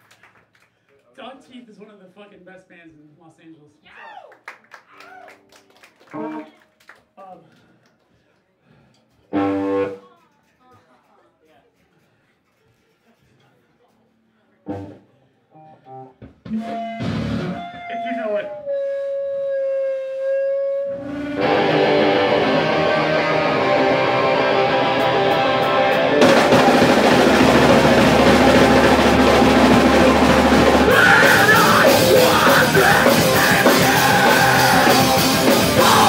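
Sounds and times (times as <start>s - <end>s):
punk band playing live: 9.3s - 10.0s, 16.4s - 18.0s, 20.9s - 36.0s
held electric guitar note: 20.4s - 36.0s.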